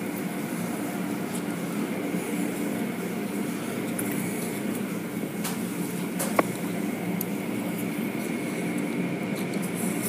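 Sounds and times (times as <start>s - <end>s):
low machinery hum: 0.0s - 10.0s.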